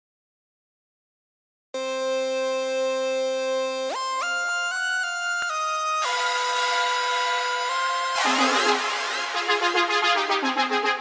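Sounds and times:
synthesizer electronic music: 1.8s - 11.0s.

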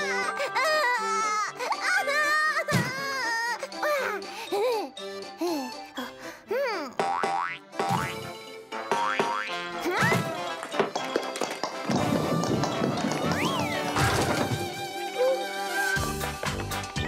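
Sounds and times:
playful cartoon music: 0.0s - 17.0s.

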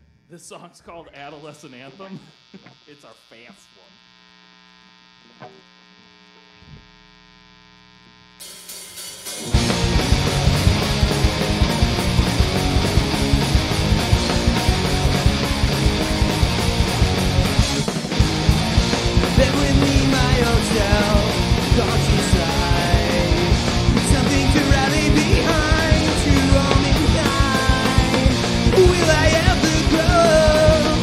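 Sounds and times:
mains hum: 0.0s - 8.8s
pop-punk band playing: 8.4s - 31.0s
rapid drumming: 8.4s - 31.0s.

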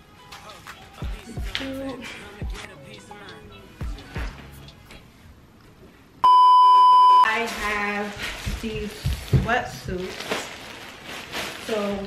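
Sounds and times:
test-tone beep: 6.2s - 7.3s.

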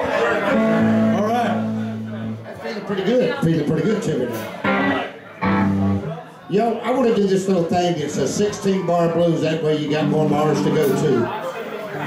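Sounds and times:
electric guitar low note ringing: 0.6s - 2.4s, 10.0s - 11.3s
person talking: 8.3s - 11.3s.

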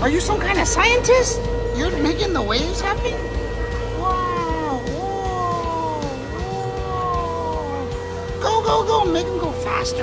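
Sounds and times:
electronic tone gliding downward: 0.0s - 10.0s
steady electronic tone: 0.0s - 10.0s.

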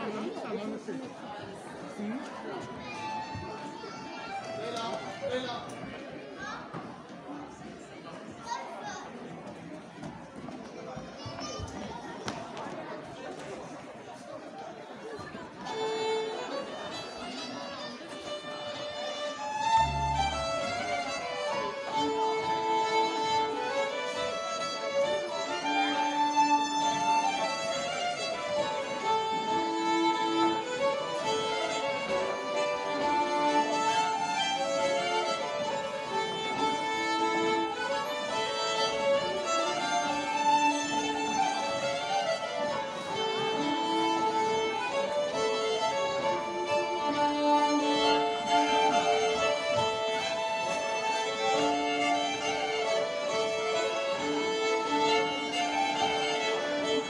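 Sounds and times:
fiddles playing melody: 2.8s - 5.5s, 15.6s - 57.0s
accordion accompaniment: 15.7s - 57.0s.

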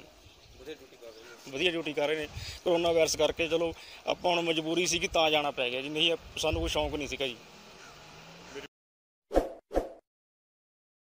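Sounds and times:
faint street background: 0.0s - 8.7s.

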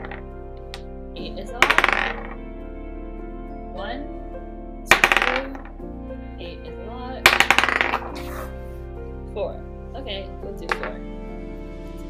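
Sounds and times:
die clattering on tabletop: 1.6s - 2.4s, 4.9s - 5.7s, 7.3s - 8.2s.

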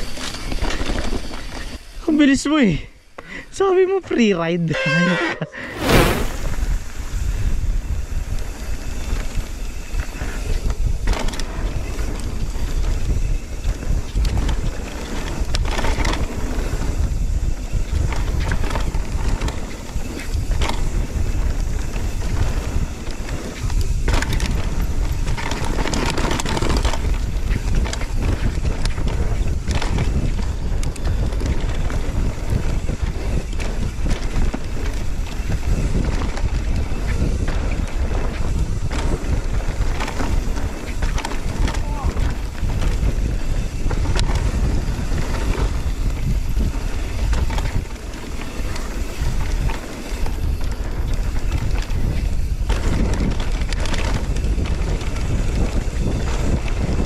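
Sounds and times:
wind on camera microphone: 5.5s - 57.0s
bike knocks and rattles: 8.4s - 57.0s
tyres rumbling on dirt: 8.4s - 57.0s.

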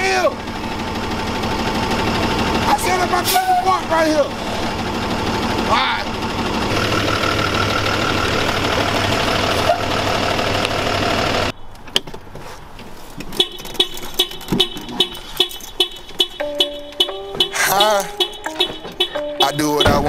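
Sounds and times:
truck engine running: 0.0s - 11.6s, 13.4s - 20.0s
hip-hop beat with bass: 13.4s - 20.0s.

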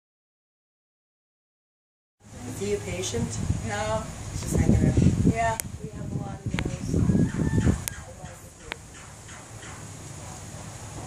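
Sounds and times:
people's voices: 2.3s - 9.0s.

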